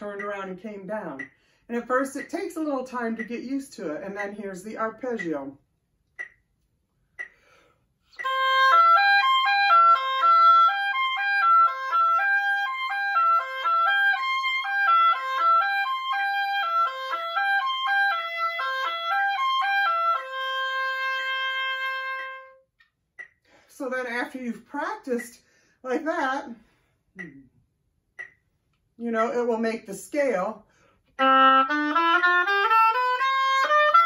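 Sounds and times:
solo oboe playing arpeggios: 8.1s - 22.7s, 31.2s - 34.0s.

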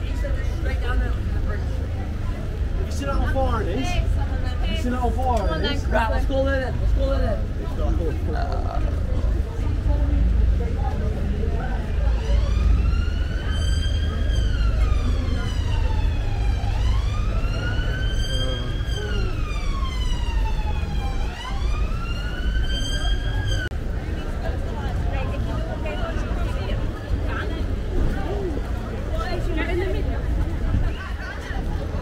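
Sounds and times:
low street rumble: 0.0s - 32.0s
siren wailing: 11.9s - 23.7s.

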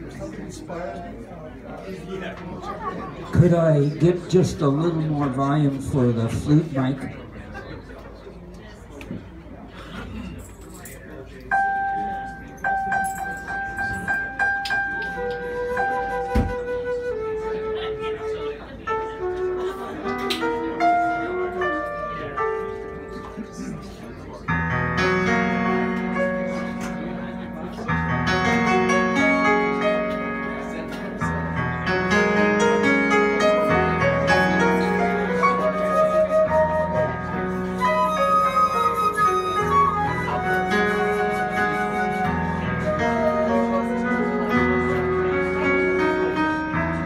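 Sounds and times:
keyboard: 10.4s - 47.0s
flute: 14.0s - 22.1s, 33.7s - 46.6s.

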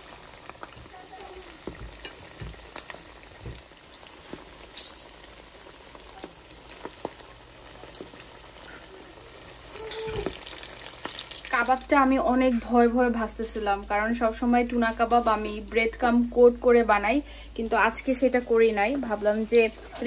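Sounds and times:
food sizzling in oil: 0.0s - 12.4s, 17.7s - 20.0s.

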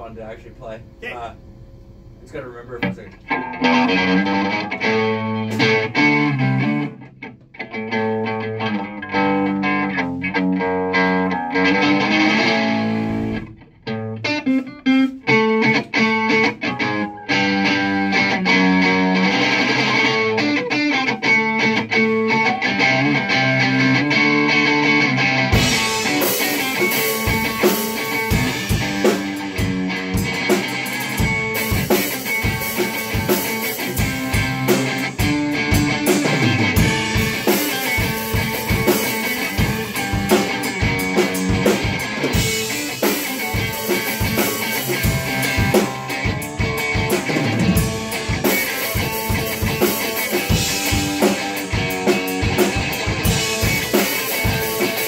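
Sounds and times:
drum kit beat: 0.0s - 1.5s, 2.2s - 55.0s
electric guitar riff: 2.6s - 55.0s.

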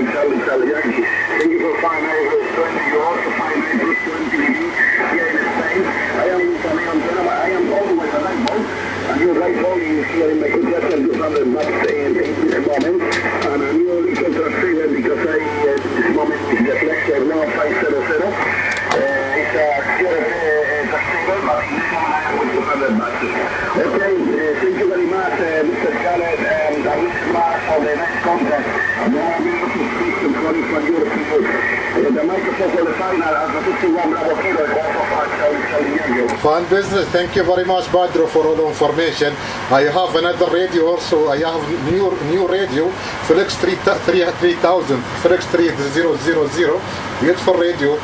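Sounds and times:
narrow-band radio speech: 0.0s - 48.0s
radio band noise: 0.0s - 48.0s.

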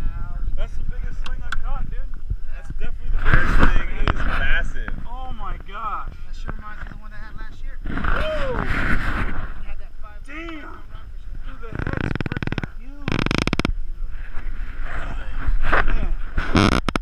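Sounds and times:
men calling out: 8.1s - 8.7s.

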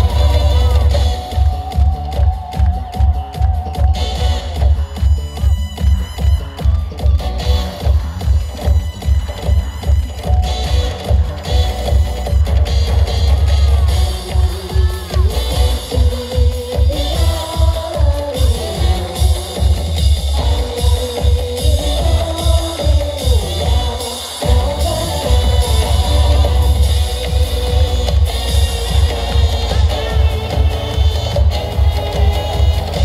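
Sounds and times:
electronic dance backing track: 0.0s - 33.0s.

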